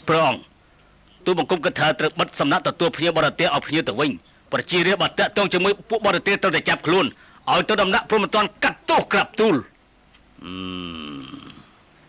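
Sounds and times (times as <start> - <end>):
man humming low: 10.4 - 11.8.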